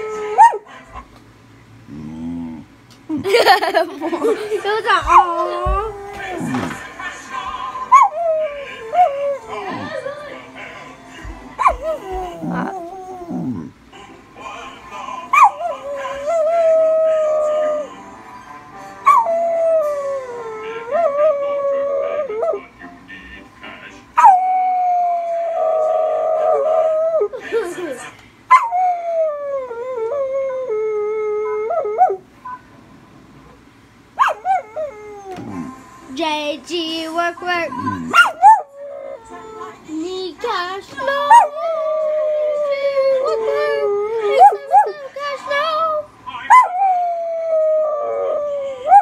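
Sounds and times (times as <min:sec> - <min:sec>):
dog howling: 0:05.1 - 0:06.8, 0:07.9 - 0:10.2, 0:11.6 - 0:13.7, 0:15.3 - 0:22.6, 0:24.2 - 0:27.4, 0:28.5 - 0:32.2, 0:34.2 - 0:35.8, 0:37.8 - 0:39.8, 0:41.1 - 0:45.0, 0:45.6 - 0:49.0.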